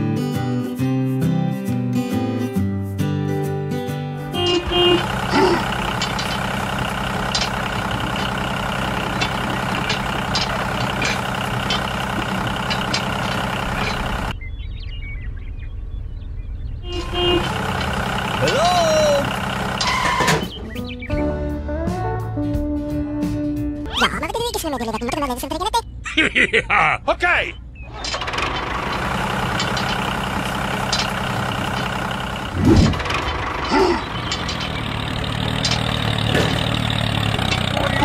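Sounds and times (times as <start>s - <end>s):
background music: 20.5s - 24.2s
voice-like glides: 23.9s - 25.8s.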